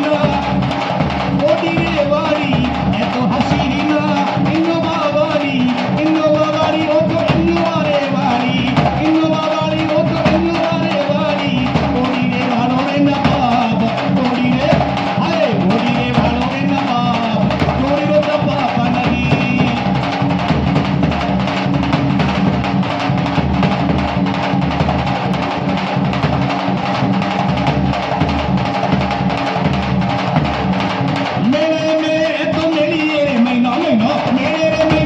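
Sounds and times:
person singing: 0.0 - 20.1
large drum beating fast rhythm: 0.0 - 35.0.

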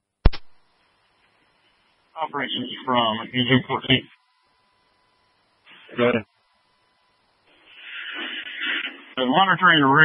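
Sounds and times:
radio static hiss: 0.2 - 10.0.

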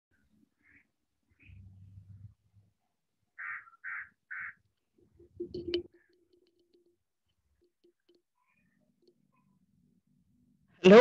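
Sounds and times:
bird calling: 0.1 - 2.1, 3.4 - 6.9.

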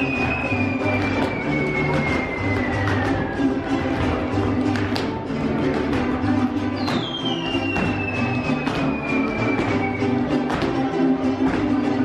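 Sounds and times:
dancers' feet tapping: 0.0 - 12.0
mariachi music with violins and guitar: 0.0 - 12.0.

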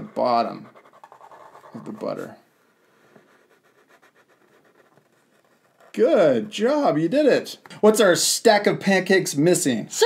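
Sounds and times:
marker scratching on paper: 0.0 - 6.6.

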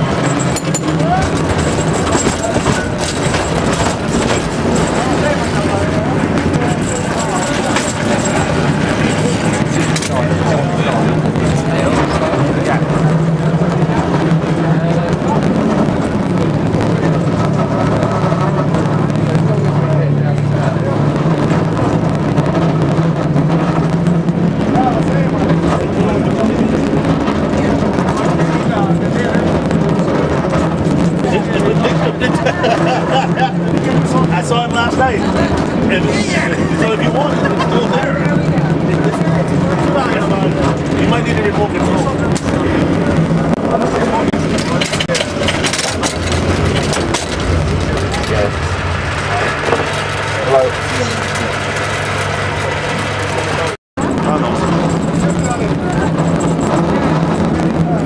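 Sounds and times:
clicks and rattles: 0.0 - 12.3, 44.3 - 53.8
cable car rumbling on track: 0.0 - 58.0
passengers' voices: 0.0 - 58.0.

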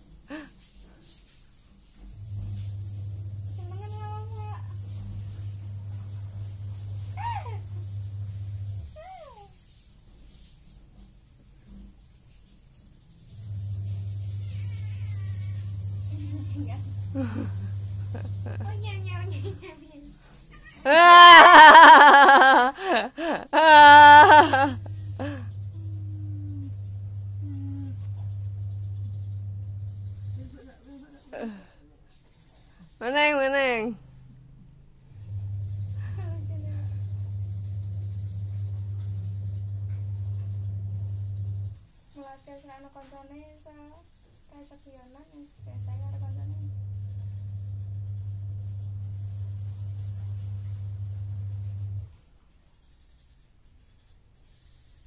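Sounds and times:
steady low hum: 13.3 - 19.6, 21.5 - 30.7, 35.0 - 42.0, 45.7 - 52.1
cat meowing: 14.4 - 15.8
cat moaning: 20.6 - 26.8, 27.4 - 28.2.

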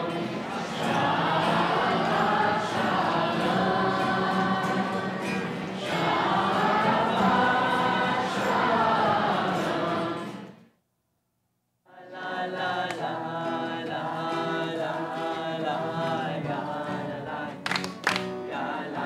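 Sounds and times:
group of teenagers singing: 0.0 - 10.6, 11.9 - 19.0.

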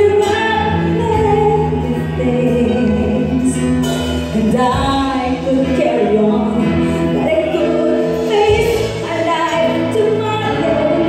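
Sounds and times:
band accompaniment: 0.0 - 11.0
electric bass: 0.0 - 11.0
woman singing into a microphone: 0.0 - 11.0.

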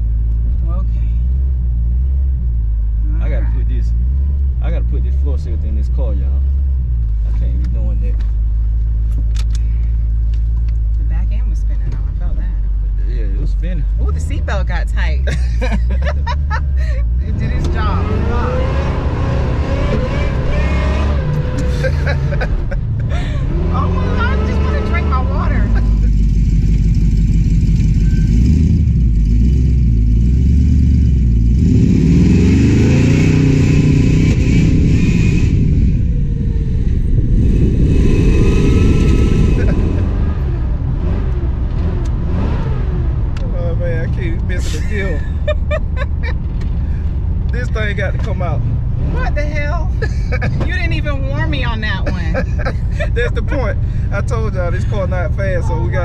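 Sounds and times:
car engine accelerating hard: 13.1 - 56.0.

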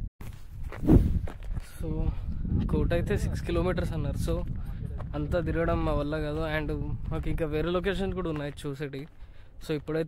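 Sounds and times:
footsteps on dirt and gravel: 0.2 - 2.8, 4.0 - 10.0.

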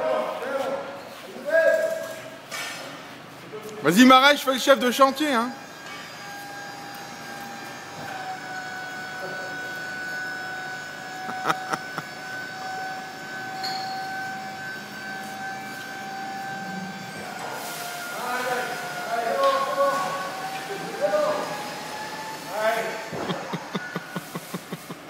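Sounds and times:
hydraulic pump whining: 3.9 - 25.0.

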